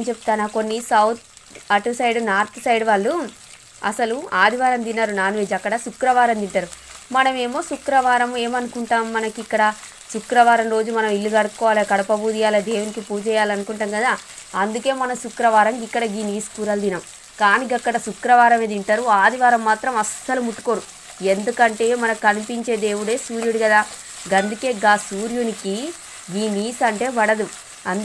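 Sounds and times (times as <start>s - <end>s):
onions sizzling in oil: 0.0s - 28.0s
person talking: 0.0s - 28.0s
spatula stirring in pot: 19.2s - 28.0s.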